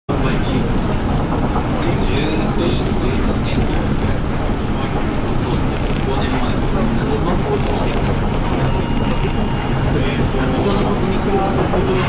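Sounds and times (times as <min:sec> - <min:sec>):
tram running rumble: 0:00.1 - 0:12.0.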